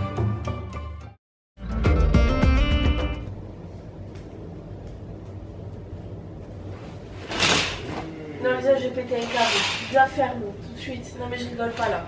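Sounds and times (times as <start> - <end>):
curtain swishing along rail: 6.7 - 8.0, 9.0 - 10.4, 11.4 - 12.0.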